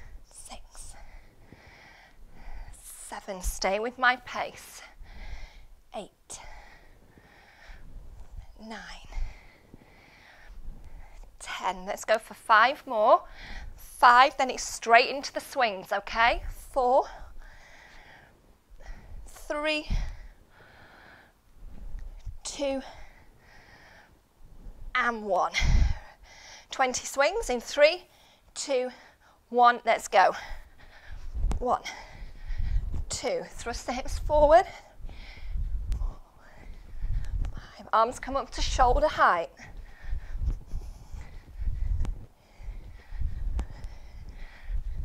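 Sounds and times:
woman breathing with exertion: 0.0 - 3.1, 4.6 - 11.4, 13.2 - 13.8, 17.1 - 24.9, 25.5 - 26.7, 30.3 - 37.9, 39.5 - 45.0.

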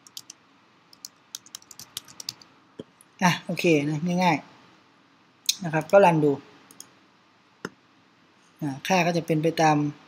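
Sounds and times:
computer keyboard typing: 0.0 - 2.5.

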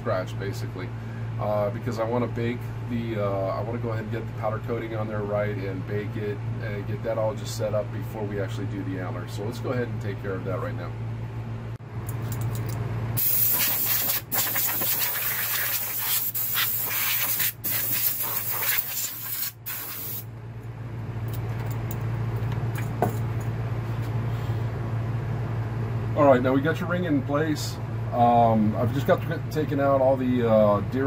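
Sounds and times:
steady low hum: 0.0 - 31.0
air hose hissing: 13.2 - 20.2.

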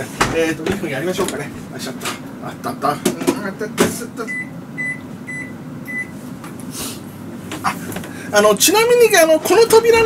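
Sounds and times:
microwave oven humming: 0.0 - 10.0
microwave keypad beeps: 4.3 - 6.1.

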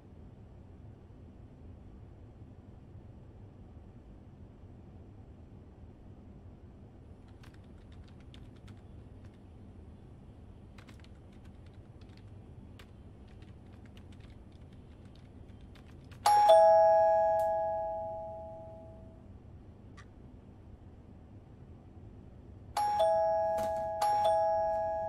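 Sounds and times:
typing on laptop keyboard: 7.2 - 9.5, 10.7 - 16.5, 22.8 - 24.4
two-note doorbell chime: 16.3 - 19.2, 22.8 - 25.0.

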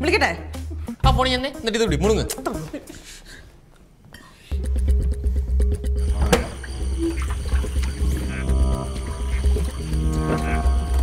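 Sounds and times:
deep pulsing bass: 4.5 - 11.0
held synth tones: 4.5 - 11.0
sharp musical hit: 6.0 - 11.0.

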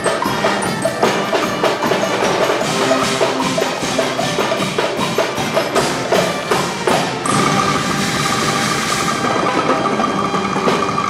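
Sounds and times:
scattered hits: 0.0 - 11.0.

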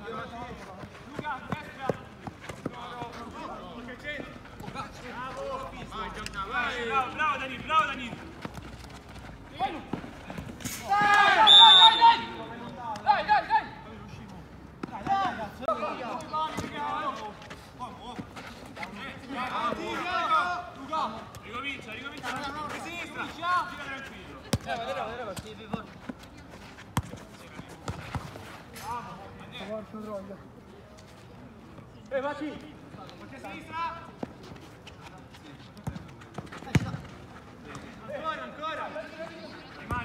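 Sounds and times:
players shouting: 10.7 - 13.8.

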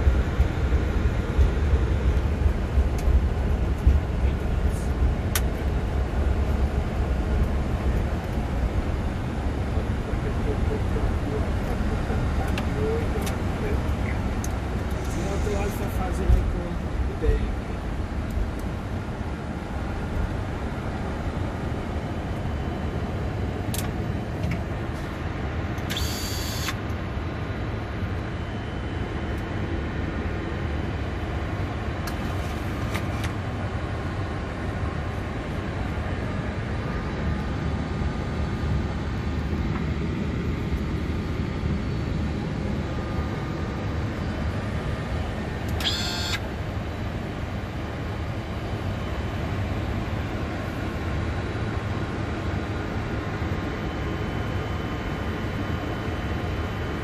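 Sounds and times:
aircraft cockpit rumble and hiss: 0.0 - 57.0.

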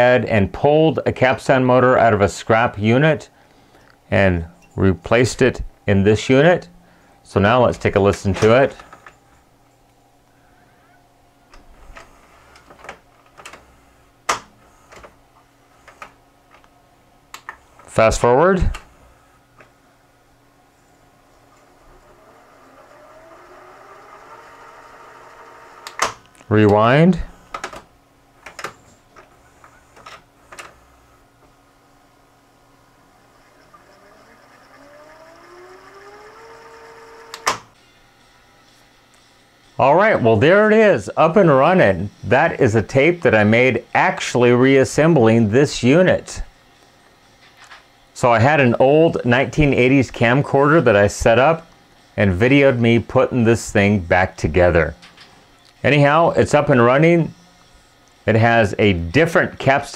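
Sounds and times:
faint motor hum: 0.0 - 59.9
mechanical clicks and clunks: 11.5 - 13.7, 25.3 - 26.8, 33.4 - 37.8
motor whine rising in pitch: 21.5 - 26.0, 32.8 - 43.9
tape mechanism clicks: 21.6 - 26.8, 33.4 - 37.7.

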